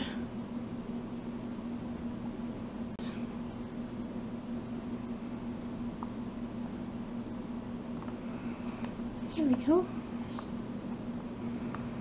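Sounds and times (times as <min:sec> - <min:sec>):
room noise hiss: 0:00.0 - 0:12.0
steady low hum: 0:00.0 - 0:12.0.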